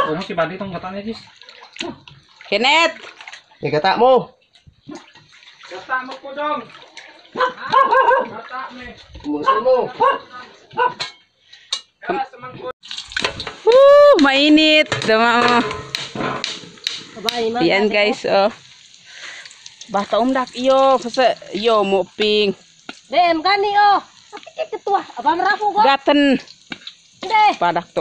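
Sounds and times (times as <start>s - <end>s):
water sloshing in a basin: 1.0s - 9.4s, 12.8s - 23.3s.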